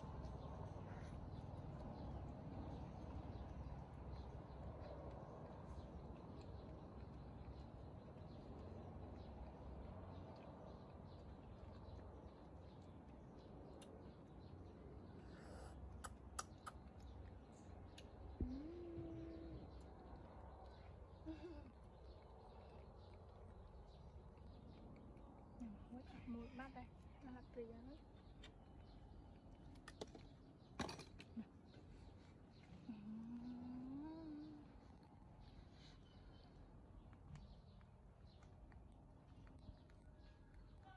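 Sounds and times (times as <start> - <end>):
low background hum: 0.0 - 40.9
woman humming: 18.4 - 19.7, 32.8 - 34.7.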